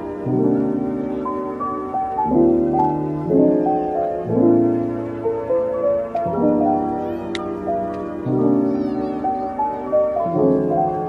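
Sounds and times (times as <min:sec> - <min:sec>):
soft background piano music: 0:00.0 - 0:11.0.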